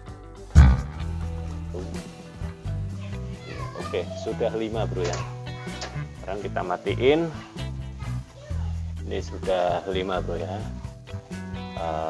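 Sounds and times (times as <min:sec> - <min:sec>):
sustained background music: 0:00.0 - 0:12.0
deep bass note: 0:00.6 - 0:01.6.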